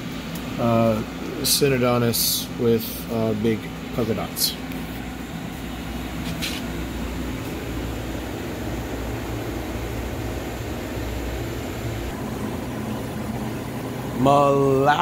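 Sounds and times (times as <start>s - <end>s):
aquarium equipment humming: 0.0s - 15.0s.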